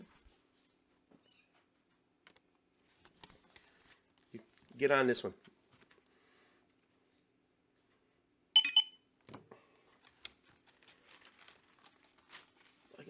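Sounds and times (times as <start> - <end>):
plastic bags rustling: 9.8 - 13.0.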